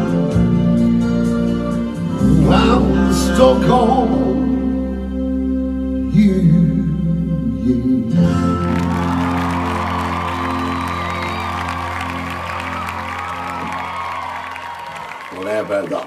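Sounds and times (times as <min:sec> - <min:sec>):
pop backing track chord: 0:00.0 - 0:14.2
man singing: 0:02.1 - 0:04.9, 0:06.0 - 0:08.8
audience applause and cheering: 0:08.6 - 0:16.0.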